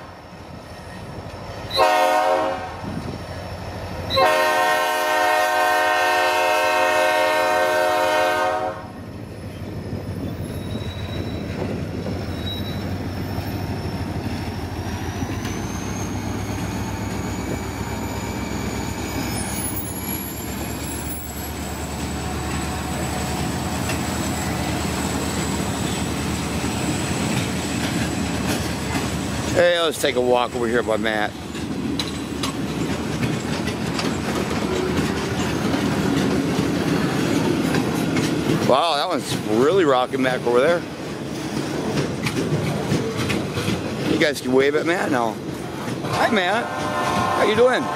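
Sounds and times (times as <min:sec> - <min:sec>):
diesel locomotive engine drone: 0:00.0 - 0:47.9
freight cars rolling on rails: 0:00.0 - 0:47.9
high wheel squeal: 0:09.4 - 0:28.2.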